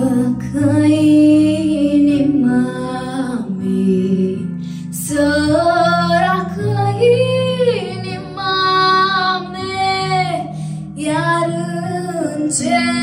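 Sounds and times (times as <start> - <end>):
girl singing into microphone: 0.0 - 4.4, 5.0 - 13.0
low musical accompaniment: 0.0 - 13.0.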